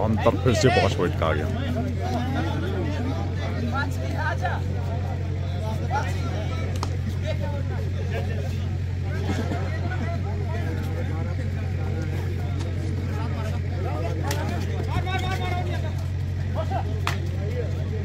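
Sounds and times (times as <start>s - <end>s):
low mechanical hum: 0.0s - 18.0s
voices and chatter: 0.0s - 18.0s.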